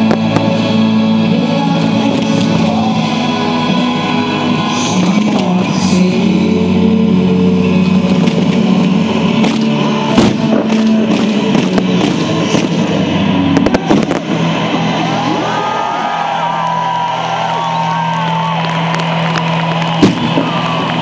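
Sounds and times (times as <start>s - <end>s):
loud music: 0.0s - 21.0s
firework bangs and cracks: 9.4s - 14.8s, 18.5s - 21.0s.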